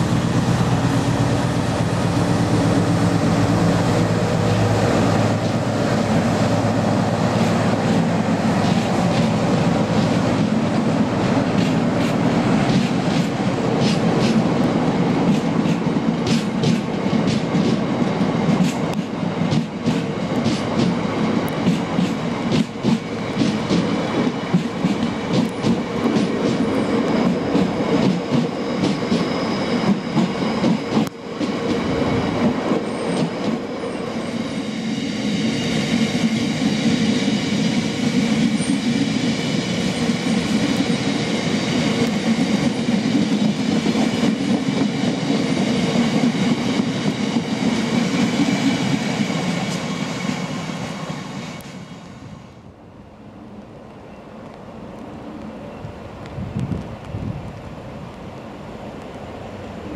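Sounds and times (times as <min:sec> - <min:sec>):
freight train rumbling past: 0:00.0 - 0:59.9
high whine from train wheels: 0:00.0 - 0:59.9.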